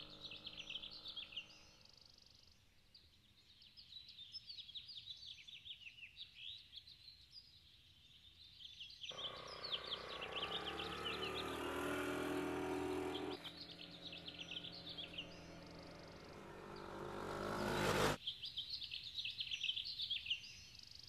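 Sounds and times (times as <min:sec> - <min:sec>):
vehicle engine passing: 0:00.0 - 0:01.8, 0:09.1 - 0:18.2
birds chirping: 0:00.0 - 0:04.4, 0:08.7 - 0:20.6.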